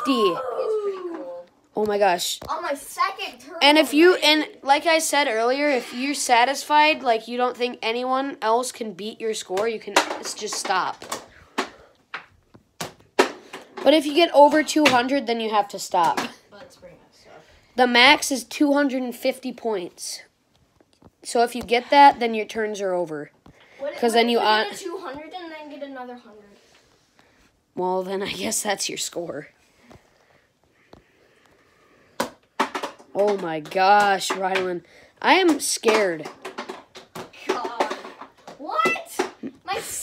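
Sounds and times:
ball clacking against toy game board: 32.2s - 39.4s.

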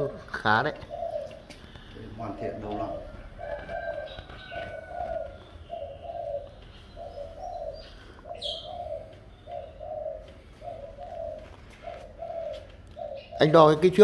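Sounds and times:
dove cooing: 0.0s - 14.0s
small birds chirping: 0.0s - 14.0s.

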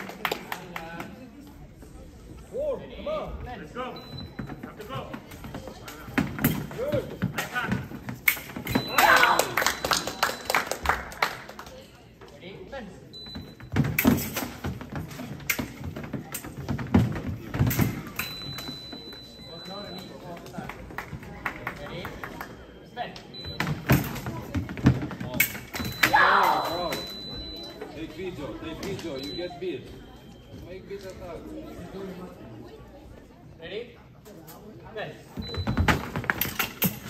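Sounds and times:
voices in a hall: 0.0s - 37.0s.

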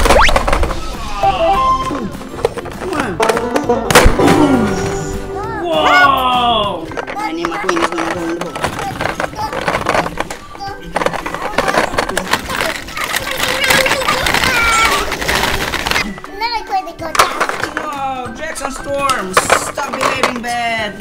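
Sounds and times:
plastic balls clattering: 0.0s - 1.2s, 2.1s - 5.2s, 6.8s - 21.0s
child making sounds: 5.1s - 6.3s, 7.1s - 7.8s, 8.7s - 15.2s, 16.1s - 17.6s.

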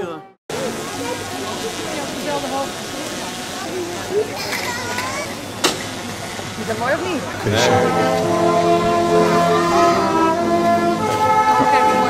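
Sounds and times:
indistinct talking: 0.0s - 12.0s
street noise hiss: 0.0s - 12.0s.

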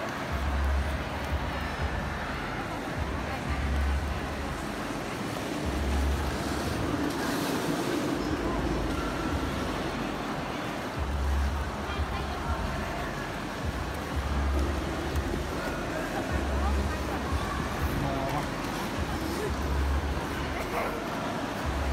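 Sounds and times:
indistinct voices of skaters: 0.0s - 21.9s.

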